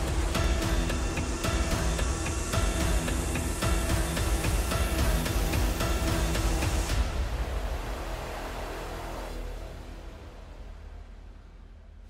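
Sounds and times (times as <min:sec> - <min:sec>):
background music with beat: 0:00.0 - 0:07.4.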